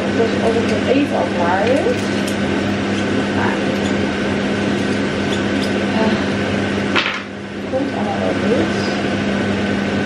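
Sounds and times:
extractor fan humming: 0:00.0 - 0:10.0
utensil stirring in a pan: 0:01.4 - 0:05.9.

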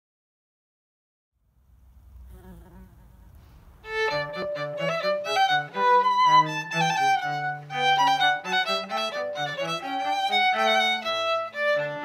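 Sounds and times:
low background rumble: 0:01.4 - 0:08.0
violin and cello duo: 0:02.2 - 0:12.0.

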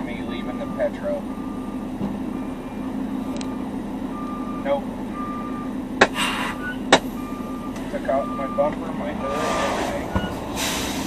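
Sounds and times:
diesel engine idling: 0:00.0 - 0:11.0
truck backup alarm beeping: 0:00.0 - 0:11.0.

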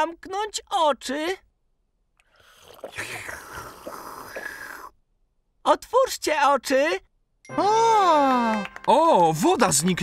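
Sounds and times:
cartoon slurping: 0:02.2 - 0:05.0
gulps: 0:02.3 - 0:05.0.

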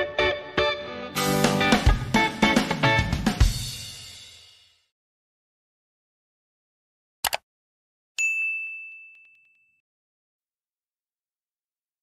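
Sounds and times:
notification bell ding: 0:08.2 - 0:09.8.

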